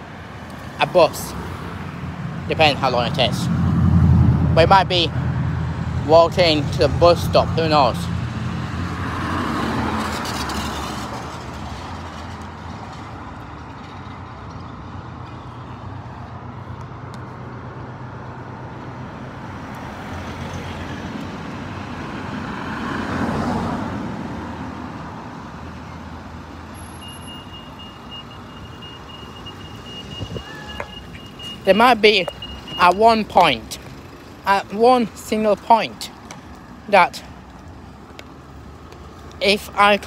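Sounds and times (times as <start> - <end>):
vehicles passing: 0.0 - 40.0.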